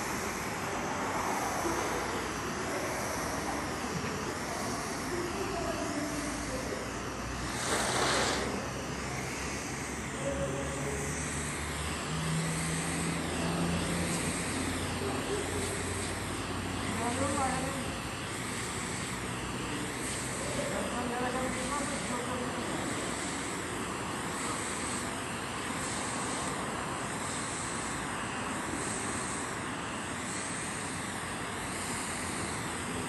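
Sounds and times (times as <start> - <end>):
foam spray rig rushing: 0.0 - 33.0
machine noise: 0.0 - 33.0.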